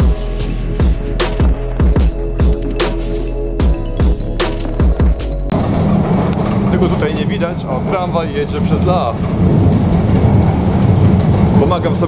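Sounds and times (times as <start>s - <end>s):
music with drum beat: 0.0s - 5.5s
tram rumble: 0.0s - 12.0s.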